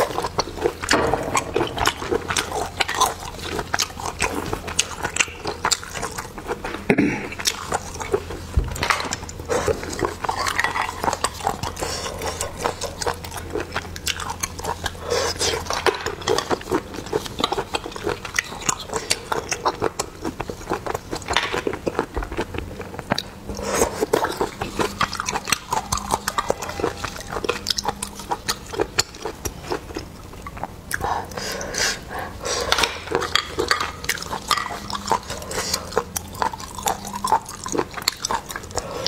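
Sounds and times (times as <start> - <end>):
close chewing and sucking: 0.0 - 39.0
person eating snails: 0.0 - 39.0.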